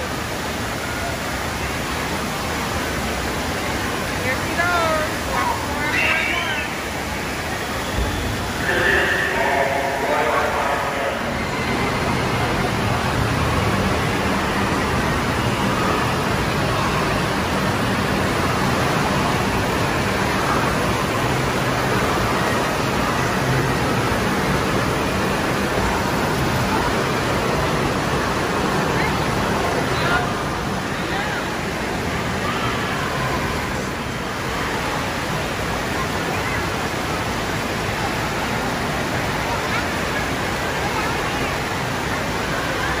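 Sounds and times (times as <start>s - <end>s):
crowd chatter: 0.0s - 43.0s
running and splashing water: 0.0s - 43.0s
raised voices: 8.6s - 11.9s.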